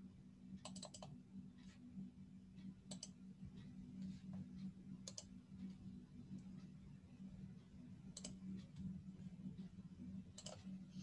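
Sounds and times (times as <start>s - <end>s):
low steady hum: 0.0s - 11.0s
faint computer mouse clicks: 0.6s - 1.1s, 2.9s - 3.2s, 8.1s - 8.9s, 10.4s - 10.7s.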